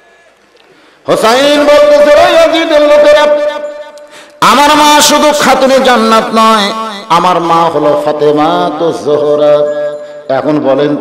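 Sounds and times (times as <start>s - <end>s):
man chanting melodically: 1.1s - 11.0s.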